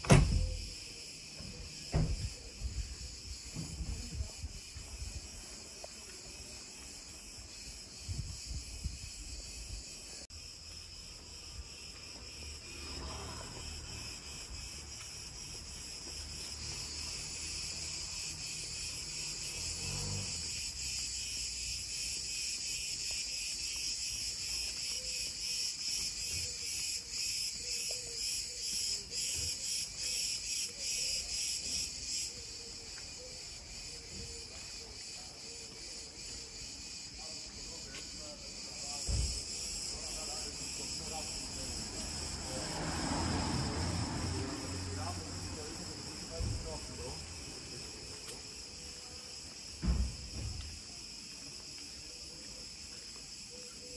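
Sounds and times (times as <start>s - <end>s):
cicadas singing: 0.0s - 53.9s
dull low thump: 1.4s - 2.8s, 49.7s - 50.8s.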